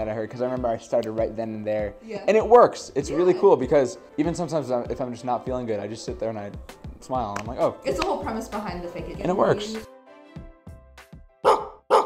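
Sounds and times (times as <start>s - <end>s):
soft steady music: 0.0s - 12.0s
dog barks: 11.4s - 12.0s.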